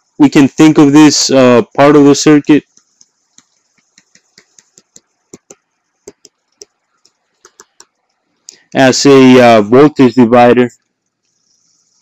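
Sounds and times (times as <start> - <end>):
input device clicks: 2.7 - 8.0.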